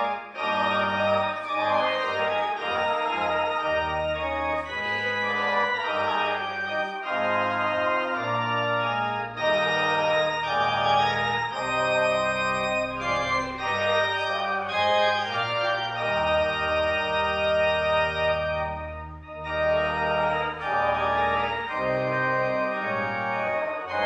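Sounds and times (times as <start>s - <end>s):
church organ playing hymn: 0.0s - 24.0s.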